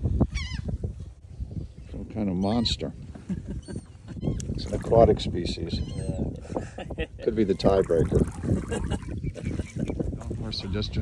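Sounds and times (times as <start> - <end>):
high-pitched animal call: 0.3 - 0.7, 5.7 - 6.3.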